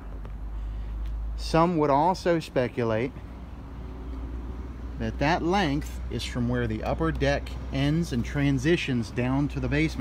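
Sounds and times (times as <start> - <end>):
distant vehicle engine hum: 0.0 - 10.0
low outdoor rumble: 0.0 - 10.0.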